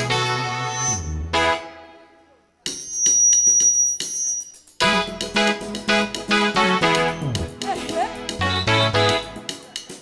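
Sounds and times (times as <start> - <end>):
quick percussion strikes: 2.7 - 10.0
worship band music: 4.8 - 9.9.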